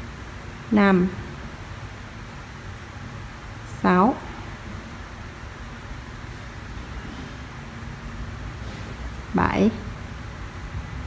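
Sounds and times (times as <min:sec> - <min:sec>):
low background hum and hiss: 0:00.0 - 0:11.0.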